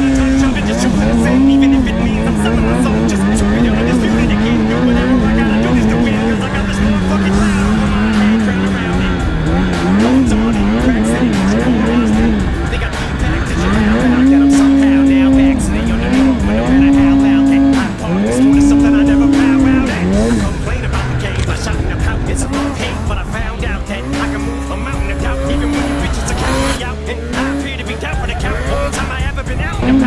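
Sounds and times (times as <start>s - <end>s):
snowmobile engine revving: 0.0s - 30.0s.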